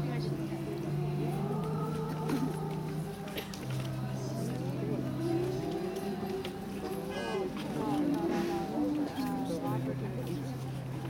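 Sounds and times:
voices singing held notes: 0:00.0 - 0:09.6.

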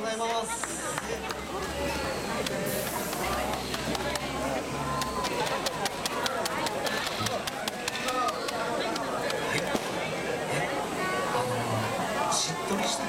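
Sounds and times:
background chatter: 0:00.0 - 0:13.0.

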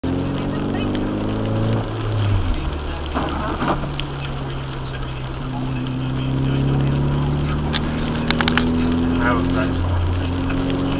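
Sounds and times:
tyres hissing on wet pavement: 0:00.0 - 0:10.9
vehicle engine running: 0:00.0 - 0:10.9.

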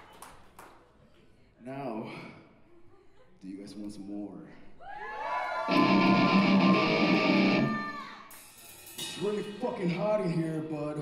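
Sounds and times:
electric guitar chord ringing: 0:05.7 - 0:07.9.

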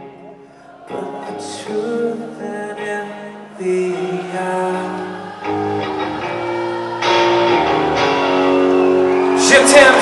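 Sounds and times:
guitar strumming chords: 0:00.9 - 0:10.0.

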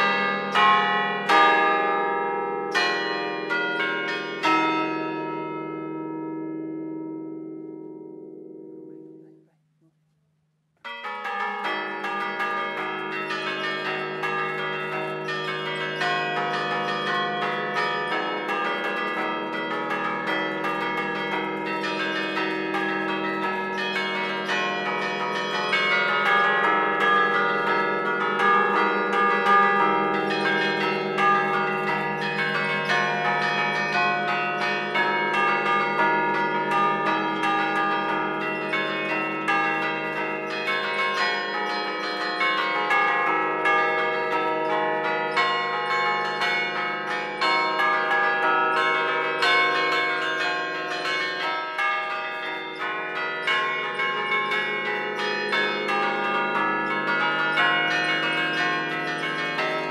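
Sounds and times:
church bells pealing: 0:00.0 - 0:09.4, 0:10.8 - 0:59.9.

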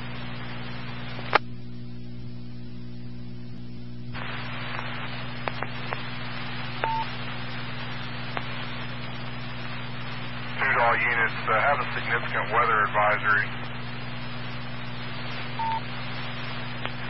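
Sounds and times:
radio hiss: 0:00.0 - 0:01.6, 0:04.1 - 0:17.0
low hum: 0:00.0 - 0:17.0
faint clicks: 0:04.7 - 0:06.1, 0:08.3 - 0:08.9, 0:16.8 - 0:17.0
short beep: 0:06.8 - 0:07.1, 0:15.6 - 0:15.8
man's voice over radio: 0:10.6 - 0:13.6.

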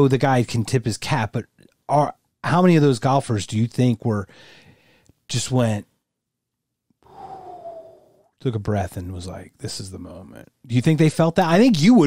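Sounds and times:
man sighing: 0:07.1 - 0:08.2.

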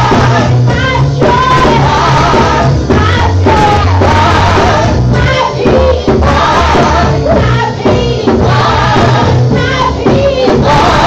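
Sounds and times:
backing singers: 0:00.0 - 0:11.0
low bass accompaniment: 0:00.0 - 0:11.0
woman singing lead: 0:00.0 - 0:11.0.

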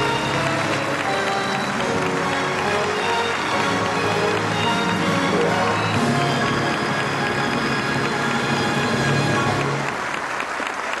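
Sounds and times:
orchestra playing: 0:00.0 - 0:10.2
audience applauding: 0:00.0 - 0:11.0.

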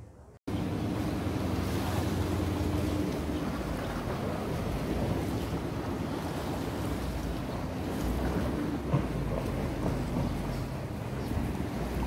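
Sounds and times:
sea water washing against rocks: 0:00.5 - 0:12.0
wind buffeting microphone: 0:00.5 - 0:12.0.

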